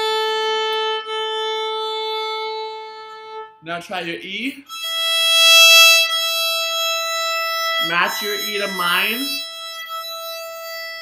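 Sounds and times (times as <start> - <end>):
violin string bowed steady note: 0.0 - 11.0
person speaking: 3.6 - 4.7, 7.8 - 9.4.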